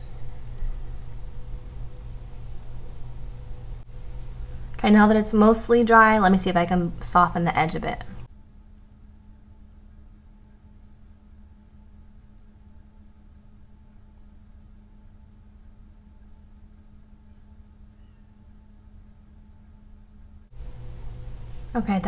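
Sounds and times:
faint steady low hum: 0.0 - 22.0.

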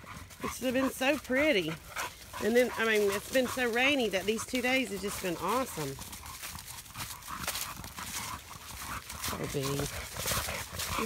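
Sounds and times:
footsteps in dry leaves: 0.0 - 11.0.

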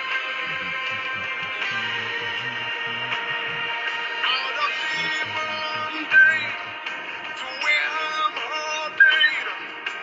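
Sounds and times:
backing music: 0.0 - 10.0
person singing worship song: 0.4 - 9.6.

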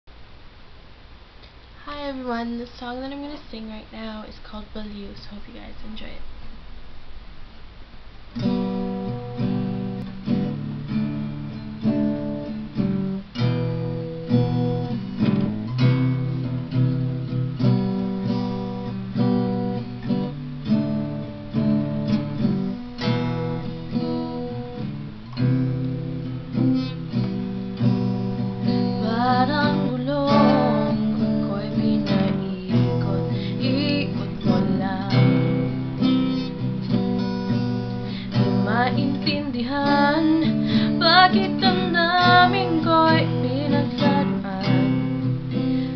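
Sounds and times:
acoustic guitar strumming: 8.3 - 45.9.

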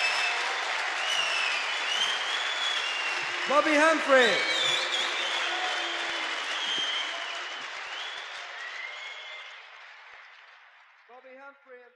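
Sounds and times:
audience applauding: 0.0 - 11.8.

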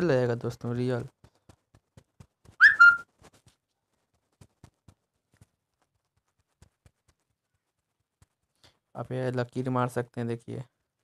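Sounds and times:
high whistle-like sound: 2.6 - 3.0.

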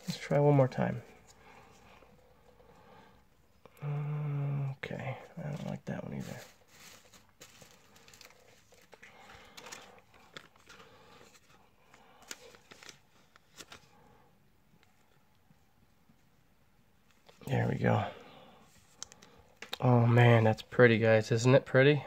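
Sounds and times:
plastic card sleeve crinkling: 5.3 - 14.0.

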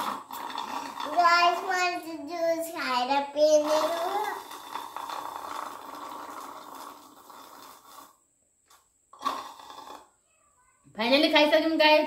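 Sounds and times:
slurping through a straw: 0.0 - 1.8, 3.4 - 10.1.

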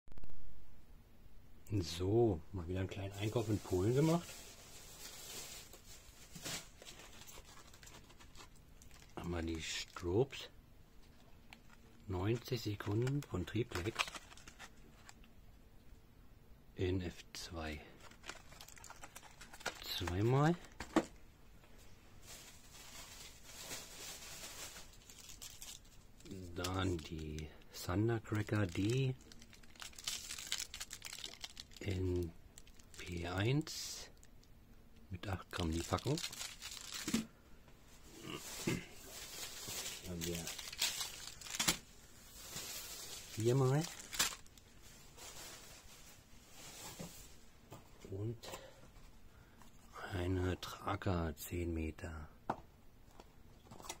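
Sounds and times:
packets rustling and crinkling: 2.9 - 10.4, 11.0 - 15.3, 18.0 - 31.9, 32.6 - 34.3, 35.3 - 37.3, 37.9 - 47.8
faint rustling: 35.5 - 49.8.

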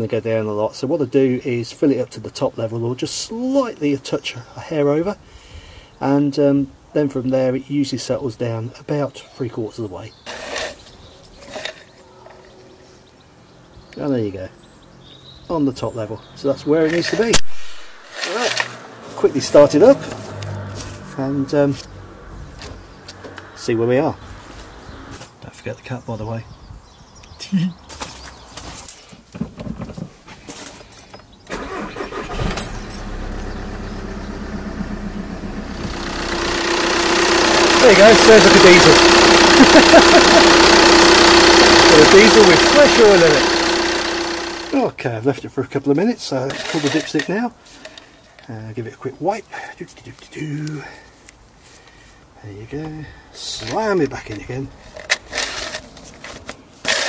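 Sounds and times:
diesel engine starting and idling: 17.7 - 21.6, 31.5 - 44.9.

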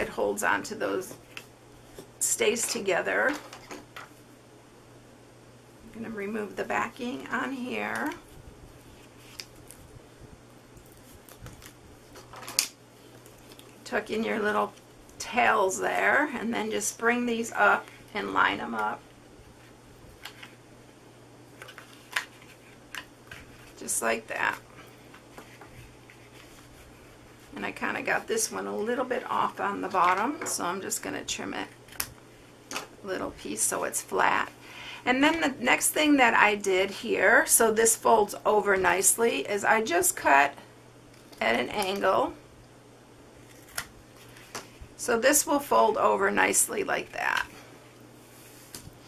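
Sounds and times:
faint steady hum: 0.0 - 49.0.

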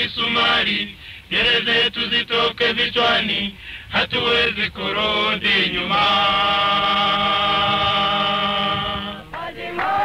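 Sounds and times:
men singing a marching song: 0.0 - 10.0.

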